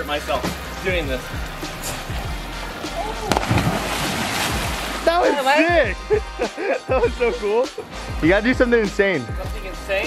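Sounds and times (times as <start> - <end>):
spray and churning water: 0.0 - 5.6
body smacking water: 3.3 - 5.0.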